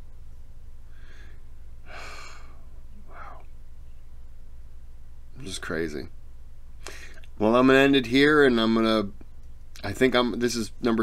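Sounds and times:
steady low hum: 0:00.0 - 0:11.0
man breathing: 0:00.8 - 0:03.5, 0:06.8 - 0:07.3.

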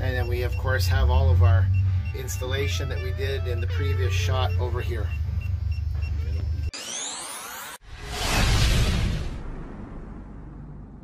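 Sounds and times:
low engine hum: 0:00.0 - 0:06.7
synthesized rising sweep: 0:01.2 - 0:11.0.

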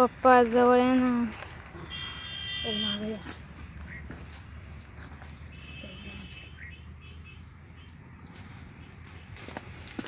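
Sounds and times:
small bird chirping: 0:01.4 - 0:04.2, 0:05.6 - 0:09.4.

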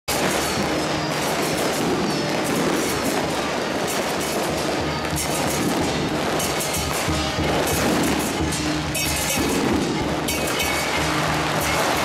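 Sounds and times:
music playing: 0:00.1 - 0:12.0
procession crowd din: 0:00.1 - 0:12.0.

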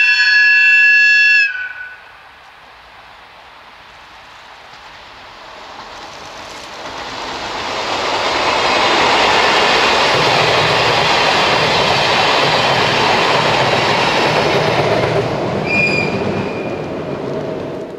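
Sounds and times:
train wheels on rail: 0:00.0 - 0:17.9.

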